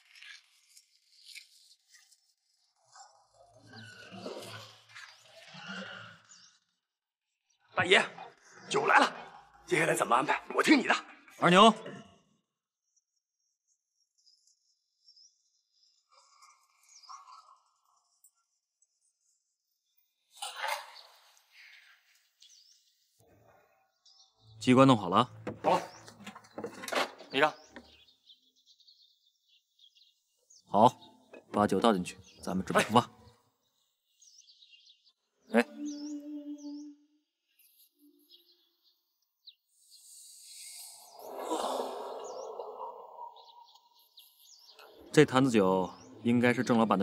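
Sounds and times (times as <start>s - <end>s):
small birds chirping: 0.0s - 47.0s
high thin chirping: 39.7s - 44.5s.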